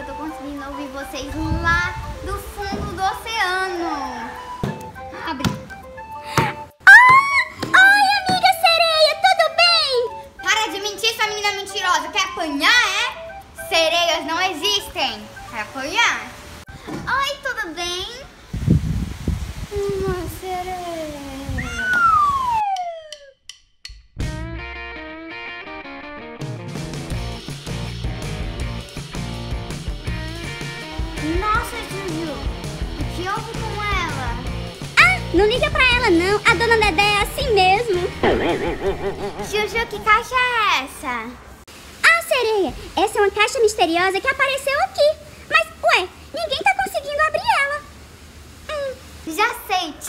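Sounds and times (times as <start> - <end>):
quiet background music: 0.0 - 16.7
falling whistle-like pitch glide: 21.7 - 23.3
steady bass beat: 36.9 - 40.5.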